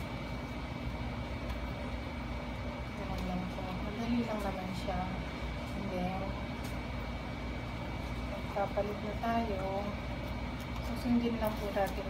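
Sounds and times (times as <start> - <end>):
low background hum: 0.0 - 12.0
thin steady whine: 0.0 - 12.0.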